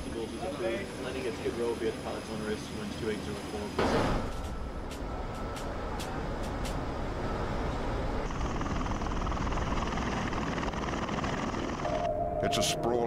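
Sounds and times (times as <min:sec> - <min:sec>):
tiltrotor aircraft rotor and engine noise: 0:00.0 - 0:13.0.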